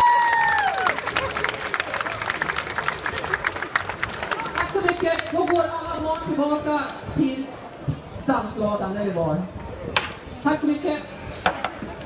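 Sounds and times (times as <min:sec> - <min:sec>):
audience clapping: 0:00.0 - 0:05.7
crowd voices: 0:00.0 - 0:12.0.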